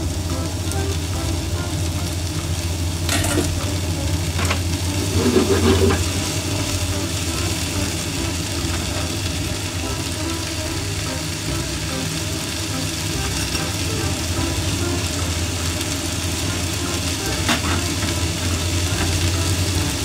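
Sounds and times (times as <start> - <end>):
constant low hum: 0.0 - 20.0
greens sizzling in a frying pan: 0.0 - 20.0.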